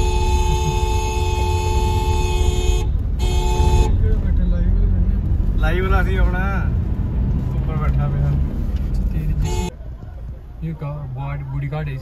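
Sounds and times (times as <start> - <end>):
vehicle driving rumble: 0.0 - 12.0.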